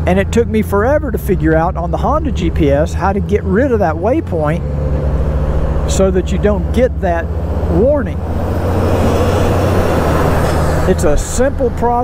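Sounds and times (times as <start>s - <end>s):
motorcycle humming: 0.0s - 12.0s
truck passing: 0.0s - 12.0s.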